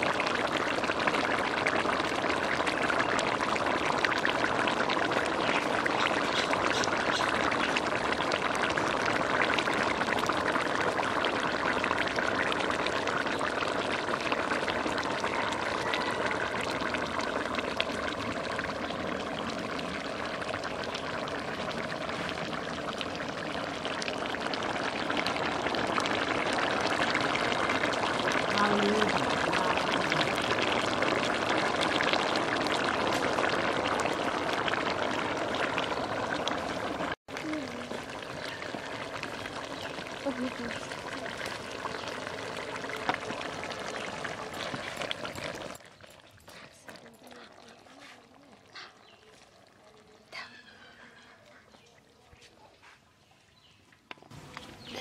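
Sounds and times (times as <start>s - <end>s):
curry bubbling in pot: 0.0s - 55.0s.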